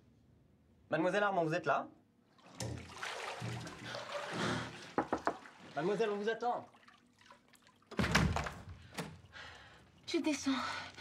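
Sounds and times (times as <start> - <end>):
bathwater splashing and sloshing: 2.3 - 11.0.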